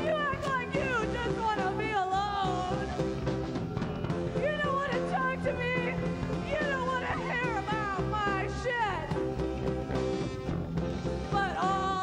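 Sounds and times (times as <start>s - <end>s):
band playing drums and guitars: 0.0s - 12.0s.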